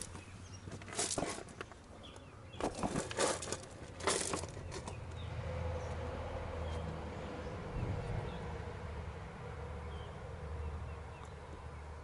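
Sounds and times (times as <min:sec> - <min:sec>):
rustling and handling clicks: 0:00.0 - 0:05.0.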